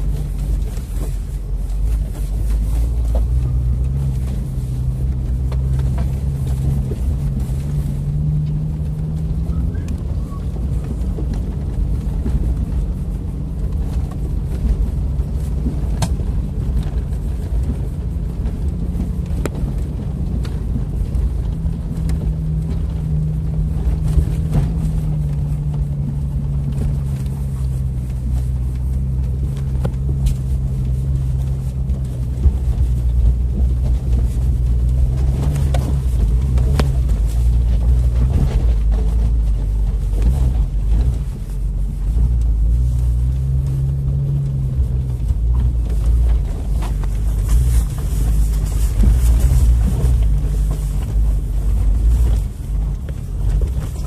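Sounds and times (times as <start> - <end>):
engine running at low revs: 0.0 - 54.0.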